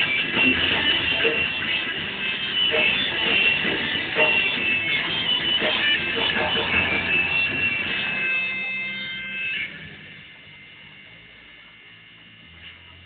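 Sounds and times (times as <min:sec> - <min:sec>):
rock band held chord: 0:00.0 - 0:11.4
amplifier electrical hum: 0:00.0 - 0:13.0.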